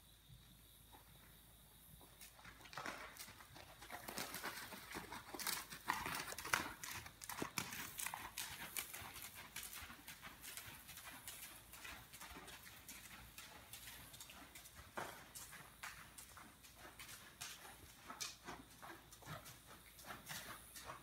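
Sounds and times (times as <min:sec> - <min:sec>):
horse hooves on sand: 0:00.0 - 0:21.0.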